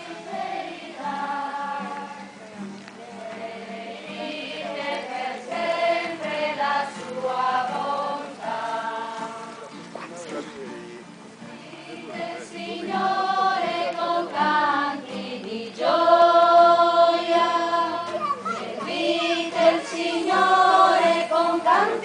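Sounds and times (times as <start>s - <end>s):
choirs singing a hymn: 0.0s - 9.9s, 11.4s - 22.0s.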